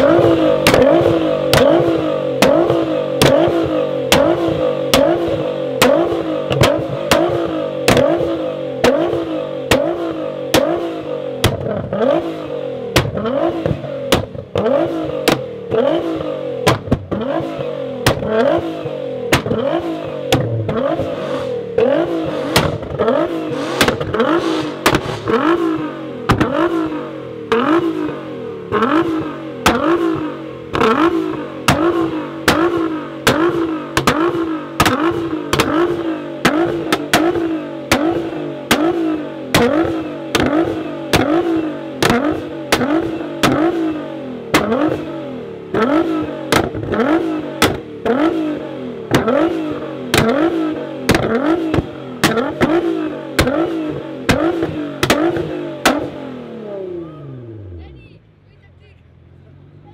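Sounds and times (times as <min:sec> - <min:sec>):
exhaust pops and bangs: 0:00.0 - 0:12.3, 0:12.9 - 0:21.2, 0:21.8 - 0:56.2
car engine revving: 0:00.0 - 0:59.9.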